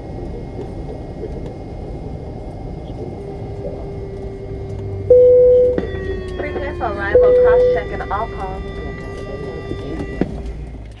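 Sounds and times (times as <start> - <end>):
aircraft cabin hum and whine: 0.0 - 11.0
low rumble: 0.0 - 11.0.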